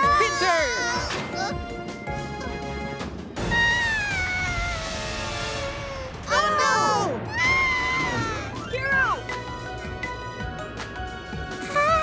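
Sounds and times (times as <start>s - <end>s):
cartoon creature cry: 3.5s - 5.2s.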